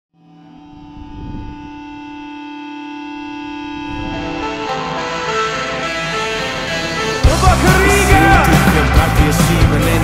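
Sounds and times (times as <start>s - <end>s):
sustained drone chord: 0.1s - 8.2s
low rumble: 3.4s - 4.7s.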